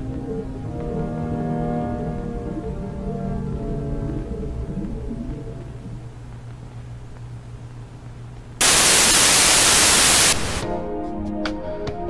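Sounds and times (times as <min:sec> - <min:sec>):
low hum: 0:00.0 - 0:10.6
analog tv static: 0:04.6 - 0:10.6.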